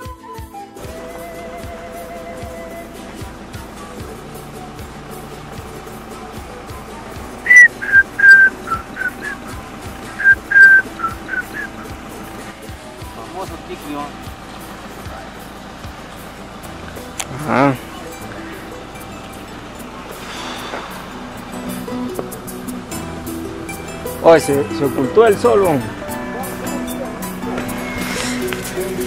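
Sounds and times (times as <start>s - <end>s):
quiet background music: 0.0s - 29.0s
short whistled notes: 7.4s - 12.0s.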